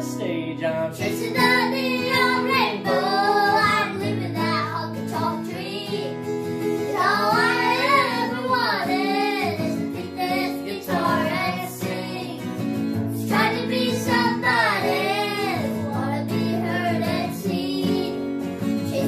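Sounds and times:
acoustic guitar: 0.0 - 19.0
children singing: 1.1 - 6.2, 6.8 - 12.6, 13.2 - 19.0.

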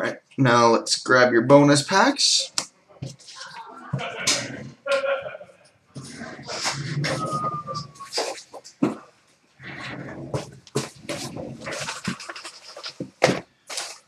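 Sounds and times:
cardboard knocks and rustles: 10.4 - 14.0.

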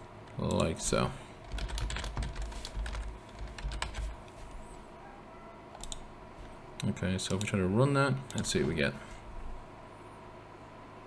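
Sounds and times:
typing on computer keyboard: 1.4 - 4.2, 5.8 - 6.0.

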